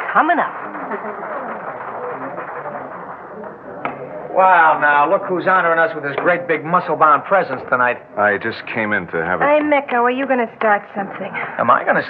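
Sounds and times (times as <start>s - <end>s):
faint music: 0.0s - 12.0s
murmur of crowd chatter: 0.0s - 12.0s.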